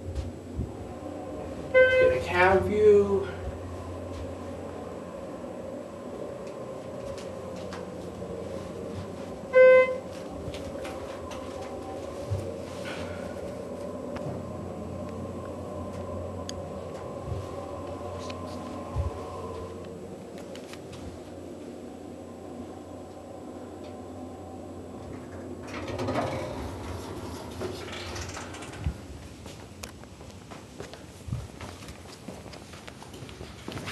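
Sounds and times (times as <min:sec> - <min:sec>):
elevator car hum: 0:00.0 - 0:33.9
elevator electronic beep: 0:01.7 - 0:02.2, 0:09.4 - 0:10.2
footsteps: 0:06.5 - 0:14.5, 0:16.8 - 0:21.8, 0:28.8 - 0:33.9.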